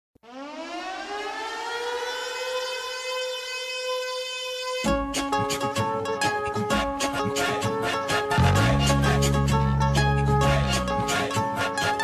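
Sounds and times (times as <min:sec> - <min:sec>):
siren winding up: 0:00.2 - 0:05.0.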